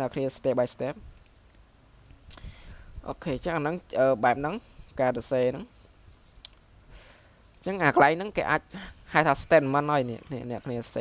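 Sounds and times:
computer mouse clicks: 0:02.3 - 0:02.8.

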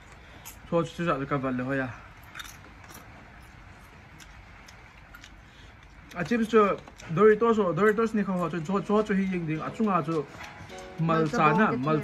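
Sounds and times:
chewing crunchy chip: 0:02.1 - 0:08.2.

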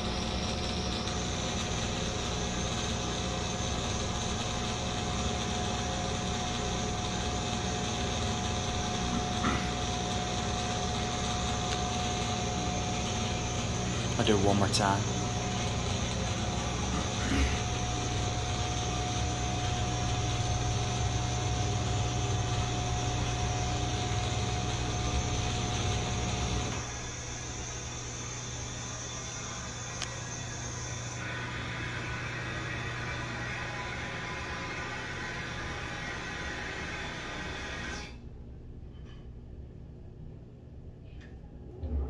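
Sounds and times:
exhaust fan air rush: 0:00.0 - 0:29.2
fan motor hum and whine: 0:00.0 - 0:42.0.

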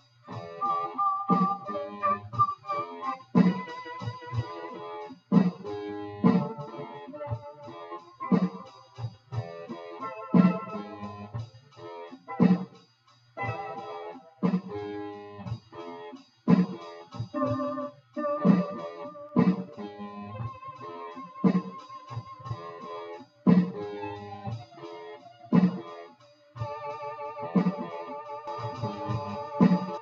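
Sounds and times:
looped drum beat: 0:00.0 - 0:30.0
looped guitar: 0:00.3 - 0:05.0, 0:05.7 - 0:12.6, 0:13.4 - 0:25.9
keyboard notes: 0:00.3 - 0:12.7, 0:13.4 - 0:16.2, 0:16.8 - 0:30.0.

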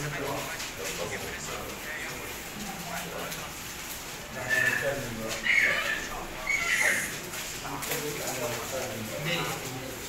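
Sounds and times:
paper shuffling: 0:00.0 - 0:10.0
people talking indistinctly: 0:00.0 - 0:10.0
sharp paper crackle: 0:00.0 - 0:10.0.

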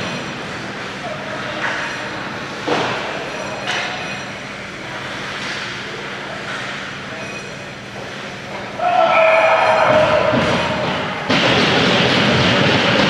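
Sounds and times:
distant voices: 0:00.0 - 0:12.4
steady hum: 0:00.0 - 0:13.0
loud held horn tone: 0:08.8 - 0:11.3.

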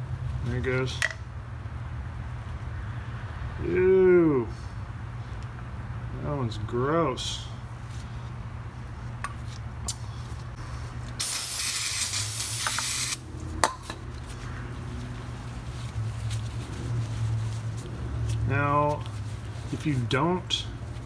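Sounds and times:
spray can hissing: 0:11.2 - 0:13.2.

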